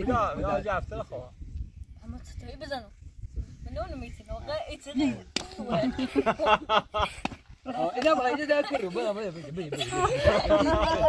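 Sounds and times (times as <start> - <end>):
man and boy talking: 0.0 - 6.1, 7.6 - 11.0
hand slap: 5.3 - 5.6
laughing: 5.6 - 7.2, 7.8 - 11.0.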